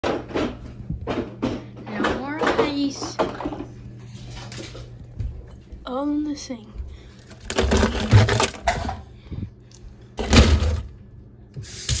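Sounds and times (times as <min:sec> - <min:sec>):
steady low hum: 0:00.0 - 0:11.8.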